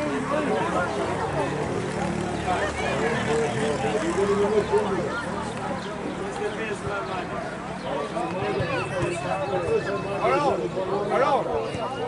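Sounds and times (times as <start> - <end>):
young voices talking and calling: 0.0 - 12.0.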